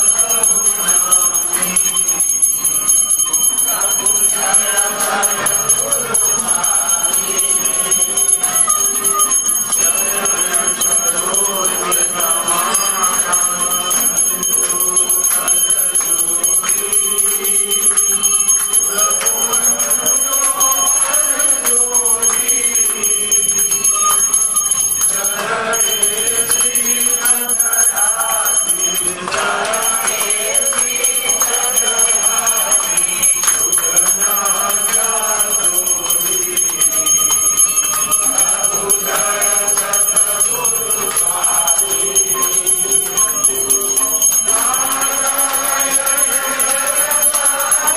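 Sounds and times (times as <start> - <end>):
group of voices singing: 0.0 - 47.9
hand bells ringing rapidly: 0.0 - 47.9.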